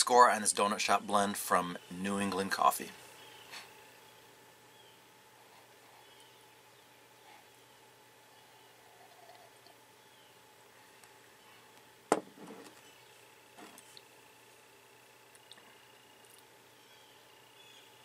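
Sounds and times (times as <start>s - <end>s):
coffee sipping: 8.3s - 9.8s
soft mouth and handling sounds: 13.6s - 14.1s.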